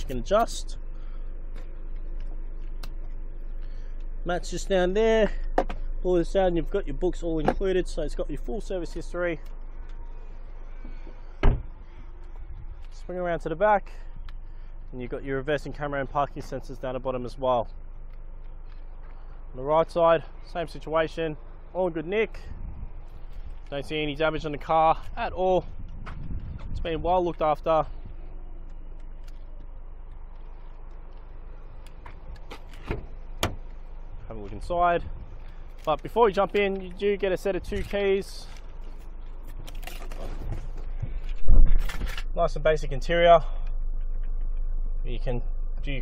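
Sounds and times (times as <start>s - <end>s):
low outdoor rumble: 0.0s - 46.0s
car door shutting: 10.8s - 11.8s, 32.0s - 33.7s.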